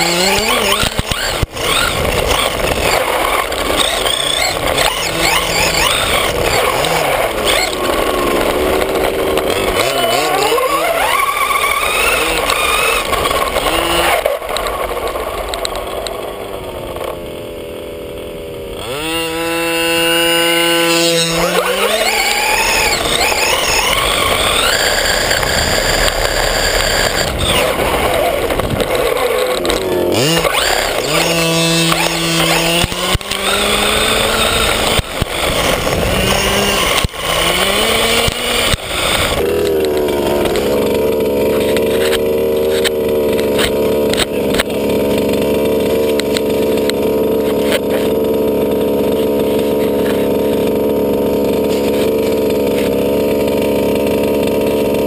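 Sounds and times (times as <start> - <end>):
rc car motor revving: 0.0 - 55.0
tyres on dirt: 0.0 - 55.0.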